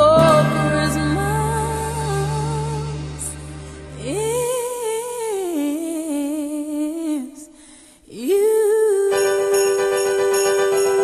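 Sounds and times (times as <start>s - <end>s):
low drone: 0.2s - 4.9s.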